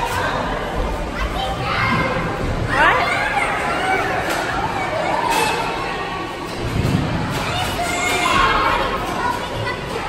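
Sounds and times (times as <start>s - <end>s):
children playing and talking: 0.0s - 10.0s
child's high-pitched voice: 7.4s - 10.0s.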